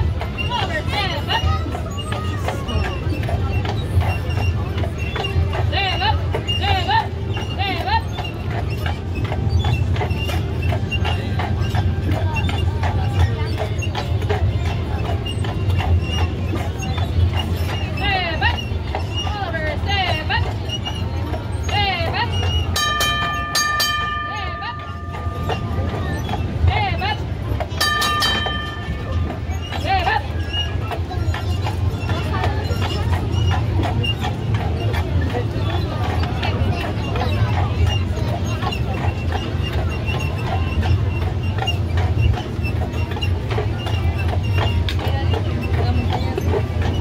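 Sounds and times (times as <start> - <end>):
crowd voices: 0.0 - 47.0
horse hooves clip-clopping: 0.0 - 47.0
wheels rumbling on rails: 0.0 - 47.0.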